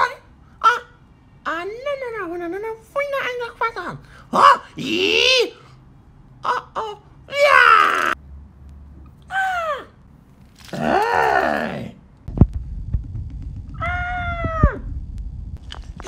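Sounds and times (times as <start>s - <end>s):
high-pitched wordless cries: 6.4s - 8.2s
camera handling rumble: 14.7s - 16.0s.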